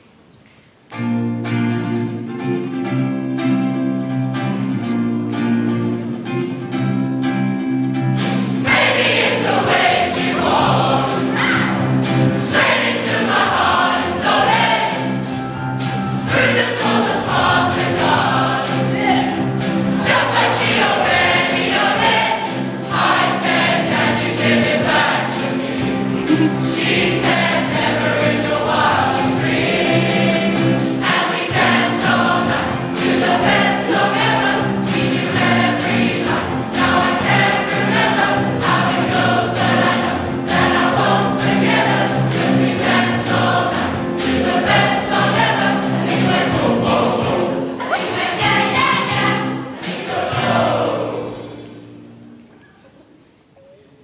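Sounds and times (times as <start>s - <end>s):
instrumental accompaniment with beat: 0.9s - 52.6s
choir singing in harmony: 8.2s - 52.2s.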